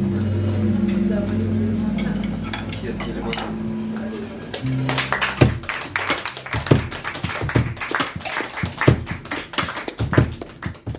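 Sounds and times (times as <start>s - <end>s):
sparse applause: 3.9s - 10.9s.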